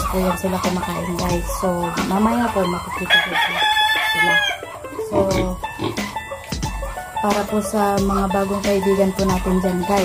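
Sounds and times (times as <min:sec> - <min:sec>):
rooster crowing: 0:02.6 - 0:05.6.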